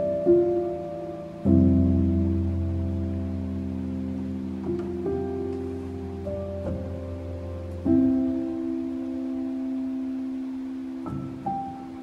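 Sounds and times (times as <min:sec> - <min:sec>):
soft piano chords: 0:00.0 - 0:12.0.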